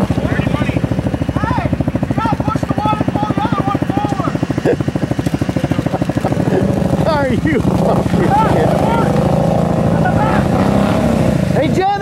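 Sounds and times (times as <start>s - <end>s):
atv engines idling: 0.0s - 12.0s.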